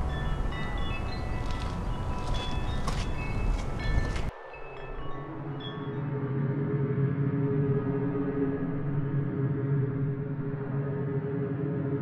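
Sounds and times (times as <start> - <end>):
wind rumbling on microphone: 0.0 - 4.3
light chiming tones: 0.0 - 6.1
low sustained musical tone: 0.0 - 12.0.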